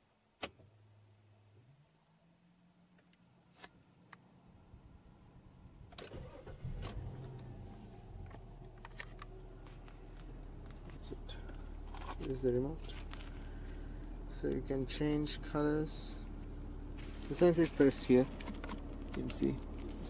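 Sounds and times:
car engine starting and idling: 5.4 - 20.0
ignition click: 5.9 - 7.6.

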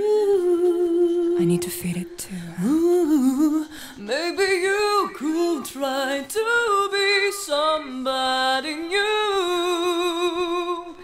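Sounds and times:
woman singing a cappella: 0.0 - 11.0.

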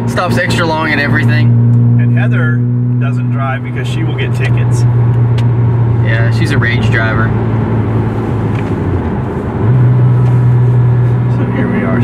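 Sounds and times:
car engine drone: 0.0 - 12.0
road noise: 0.0 - 12.0.

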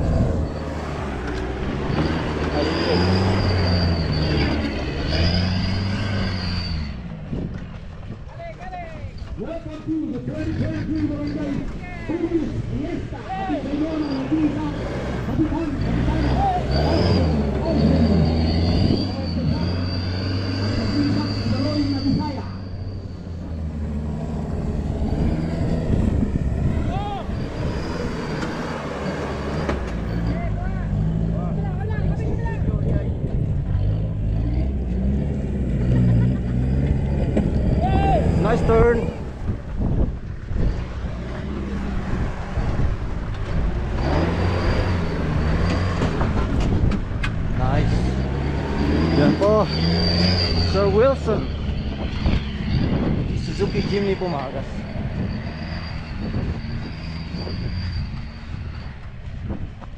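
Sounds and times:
engine revving: 0.0 - 7.6, 10.2 - 59.6
people's voices: 8.3 - 22.8, 35.6 - 39.5.

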